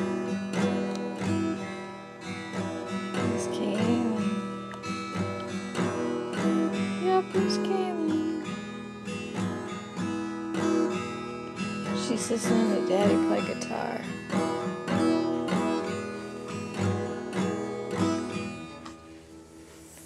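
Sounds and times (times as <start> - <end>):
acoustic guitar strumming chords: 0.0 - 20.0.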